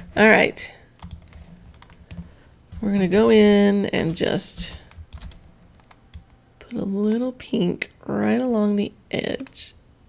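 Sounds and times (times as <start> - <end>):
low steady hum: 0.0 - 10.0
woman talking: 0.2 - 0.8, 2.8 - 4.9, 6.6 - 9.8
computer clicks: 1.0 - 2.2, 4.0 - 6.8.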